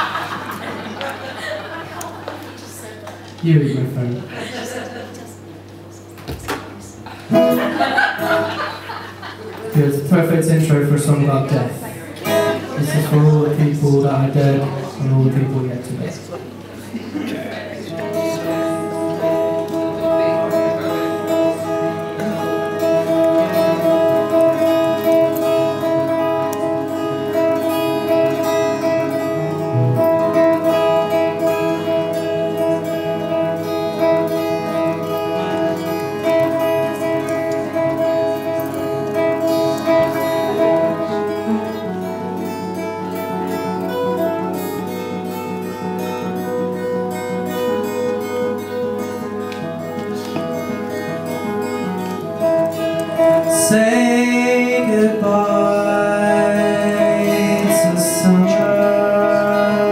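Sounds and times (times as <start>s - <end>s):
acoustic guitar strumming chords: 7.0s - 59.9s.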